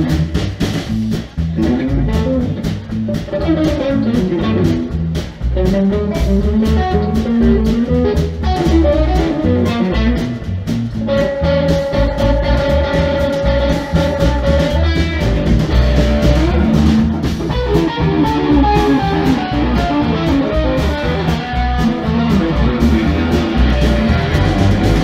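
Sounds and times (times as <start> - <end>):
drum kit: 0.0 - 25.0
electric bass: 0.0 - 25.0
electric guitar lead: 0.0 - 25.0.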